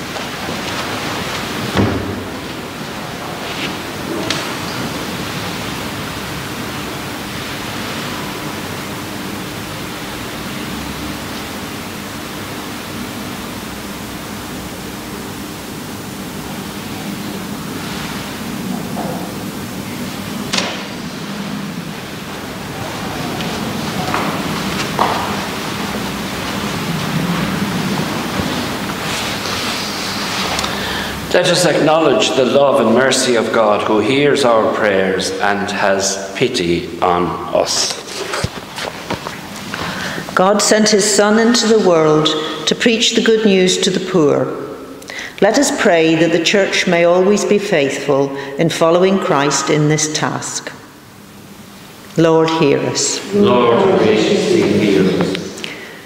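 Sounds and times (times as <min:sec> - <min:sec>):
steady hiss: 0:00.0 - 0:40.4
faint low hum: 0:52.1 - 0:56.0.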